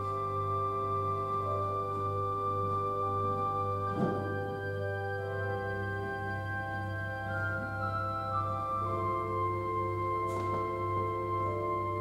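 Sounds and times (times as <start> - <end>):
church organ chords: 0.0 - 12.0
brief thump: 3.9 - 4.5.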